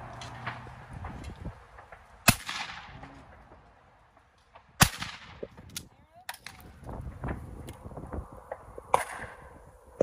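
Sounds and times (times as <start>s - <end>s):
gunshot echo: 2.2s - 3.0s, 4.8s - 5.5s
shotgun shots: 2.2s - 3.0s, 4.8s - 5.5s.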